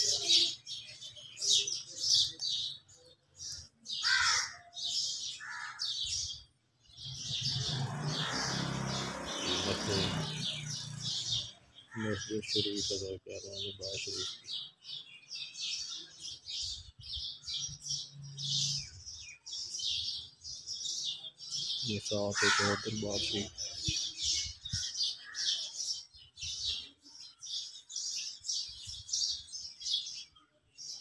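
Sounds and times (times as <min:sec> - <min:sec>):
small birds chirping: 0:00.0 - 0:31.0
louder lower bird call: 0:07.1 - 0:12.3.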